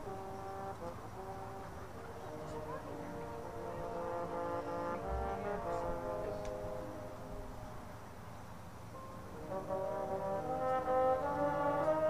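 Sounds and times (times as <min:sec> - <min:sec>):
brass band playing held chords: 0:00.0 - 0:08.2, 0:08.9 - 0:12.0.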